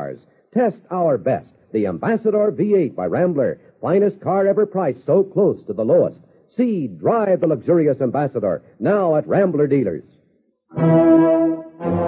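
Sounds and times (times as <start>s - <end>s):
held brass chords: 10.7s - 12.0s.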